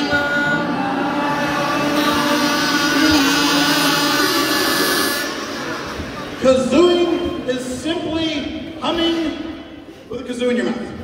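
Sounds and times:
crowd humming through kazoos: 0:00.0 - 0:08.2.

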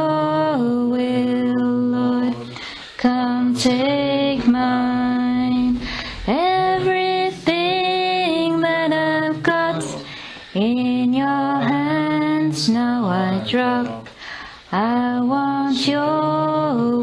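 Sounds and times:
woman singing unaccompanied: 0:00.0 - 0:17.0.

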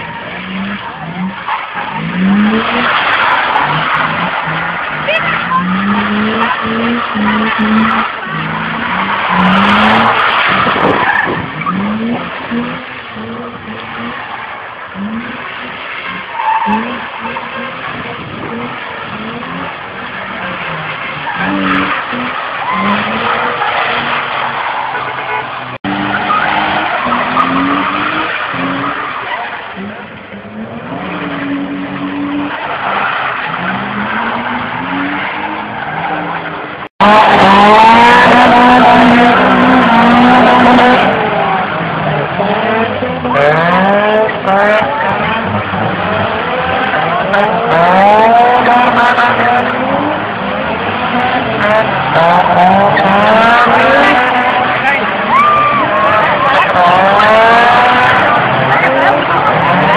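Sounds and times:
car engines revving: 0:00.0 - 0:59.9
tyres skidding and squealing: 0:00.0 - 0:59.9.

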